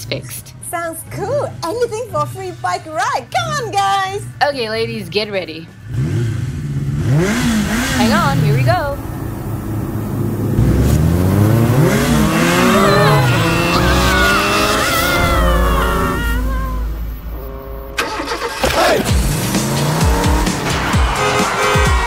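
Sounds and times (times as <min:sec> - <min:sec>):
vehicle engine revving: 0:05.7 - 0:22.0
tyres squealing: 0:11.5 - 0:19.1
music: 0:18.0 - 0:22.0.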